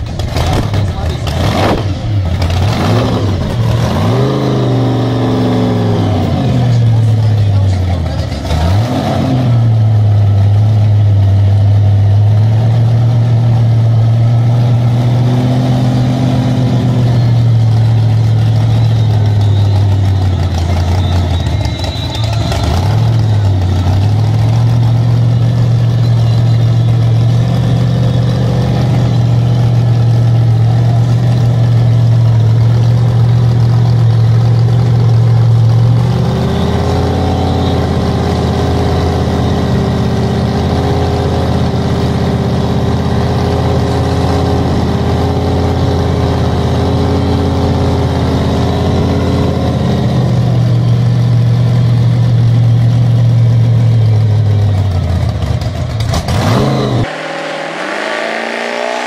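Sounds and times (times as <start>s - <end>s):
car engine idling loudly: 0.0s - 8.9s, 16.2s - 58.6s.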